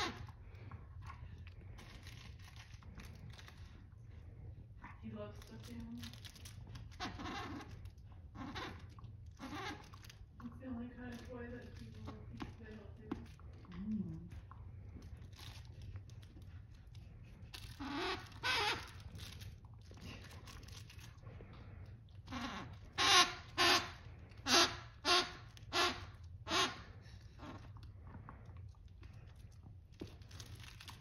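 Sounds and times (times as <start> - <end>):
plush toy squeaker squeaking: 0.0 - 0.3, 6.0 - 10.2, 17.5 - 19.4, 22.2 - 27.6.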